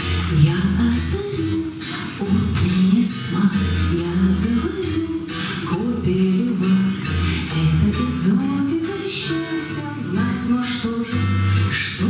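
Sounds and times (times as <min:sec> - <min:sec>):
acoustic guitar strumming: 0:00.0 - 0:12.0
woman singing: 0:00.0 - 0:12.0.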